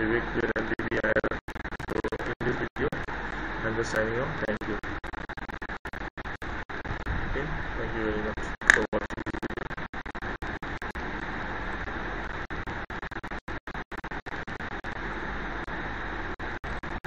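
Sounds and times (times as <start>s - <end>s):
recording hiss: 0.0s - 5.0s, 6.5s - 9.2s
low rumble: 6.9s - 8.8s.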